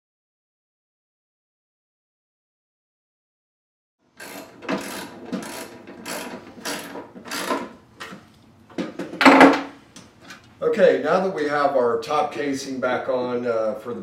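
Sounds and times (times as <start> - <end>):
knock: 8.8 - 9.7
man speaking: 10.6 - 14.0.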